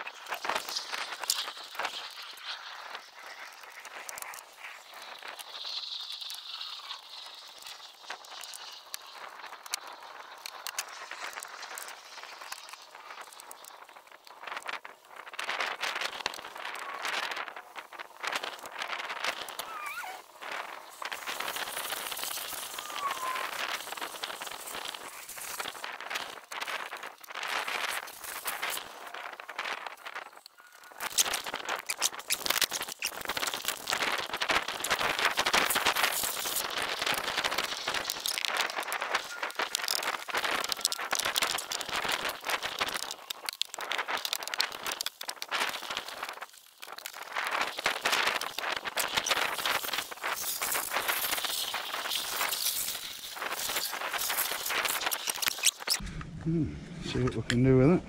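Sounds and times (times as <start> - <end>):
hose spray hissing on vehicle: 0.3 - 30.0, 31.0 - 56.0.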